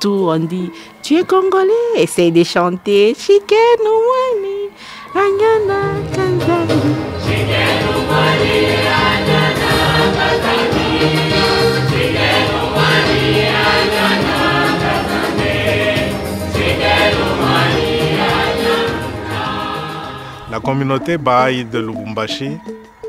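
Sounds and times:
mixed choir singing: 0:05.1 - 0:20.6.

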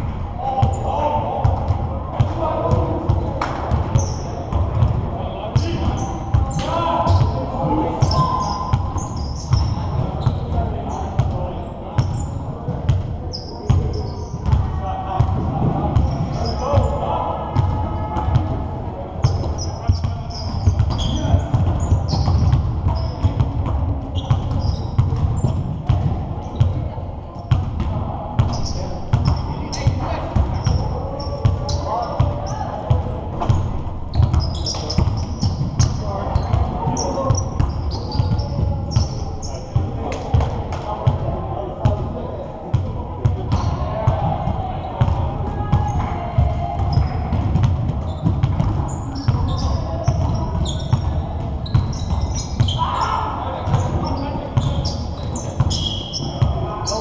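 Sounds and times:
players' voices: 0:00.0 - 0:57.0
sneakers squeaking: 0:02.7 - 0:04.9, 0:05.6 - 0:14.6, 0:15.9 - 0:18.5, 0:19.2 - 0:27.6, 0:28.4 - 0:32.7, 0:33.4 - 0:41.2, 0:43.5 - 0:46.2, 0:46.8 - 0:57.0
basketballs bouncing on hardwood: 0:46.4 - 0:52.8.

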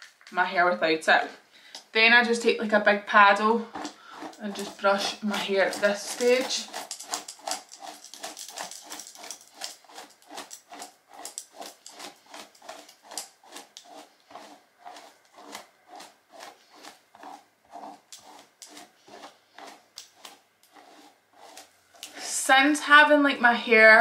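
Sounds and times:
brush strokes through wet hair: 0:03.3 - 0:22.6.

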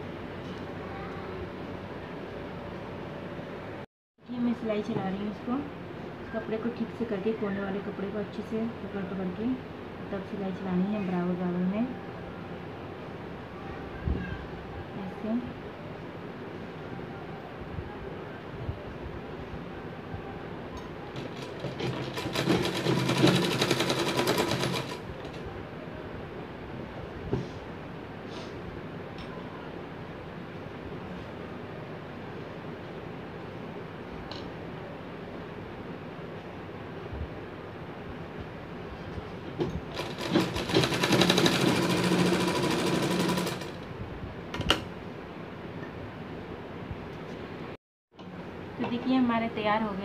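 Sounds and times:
sewing machine stitching: 0:21.2 - 0:25.0, 0:39.9 - 0:43.8.

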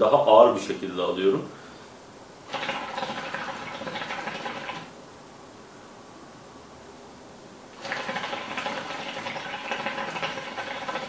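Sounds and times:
hookah bubbling: 0:02.4 - 0:05.0, 0:07.7 - 0:11.0.

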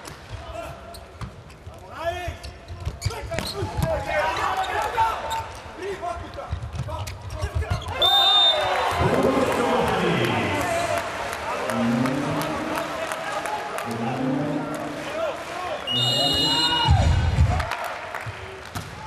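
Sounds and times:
players shouting: 0:07.9 - 0:17.8
crowd cheering: 0:08.0 - 0:19.0
short high whistle: 0:15.8 - 0:17.1.

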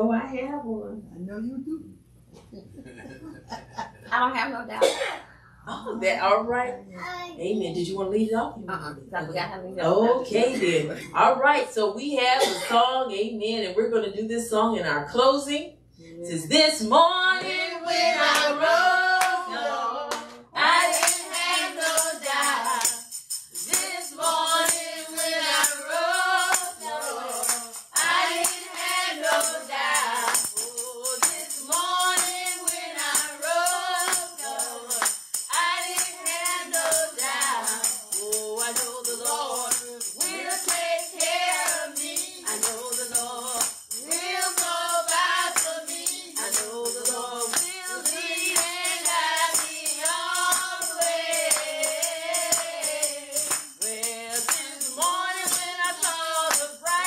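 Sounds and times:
woman singing: 0:11.2 - 0:14.7, 0:16.3 - 0:23.0, 0:23.7 - 0:57.0
woman singing into microphone: 0:12.4 - 0:12.9, 0:53.8 - 0:57.0
tambourine strikes: 0:20.6 - 0:57.0.

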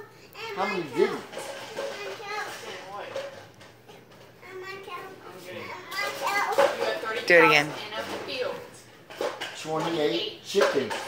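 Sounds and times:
children talking: 0:00.0 - 0:03.1, 0:04.4 - 0:08.8.

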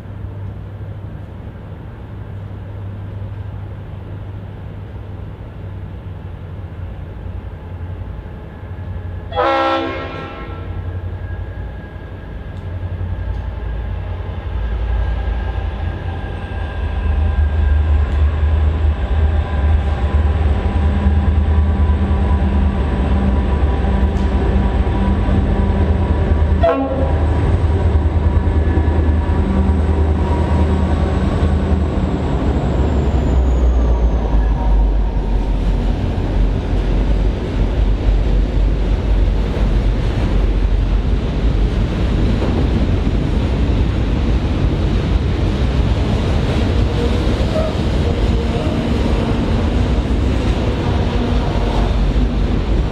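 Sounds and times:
locomotive engines rumbling: 0:00.1 - 0:52.9
train horn blast: 0:09.3 - 0:10.9, 0:26.6 - 0:27.3, 0:47.1 - 0:47.9.

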